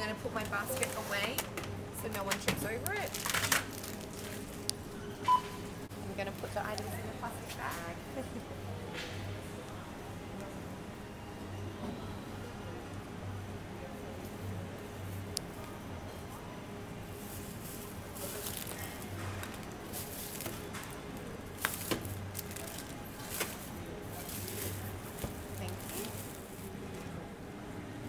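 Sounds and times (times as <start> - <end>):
low background hum: 0.0 - 28.0
plastic bag rustling: 2.9 - 4.7, 17.2 - 26.8.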